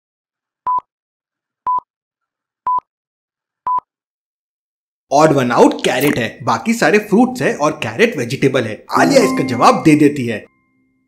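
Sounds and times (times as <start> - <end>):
short countdown beeps: 9.0 - 10.0.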